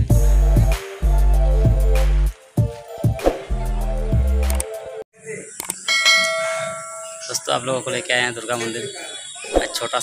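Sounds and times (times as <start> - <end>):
bell ringing: 5.9 - 8.1.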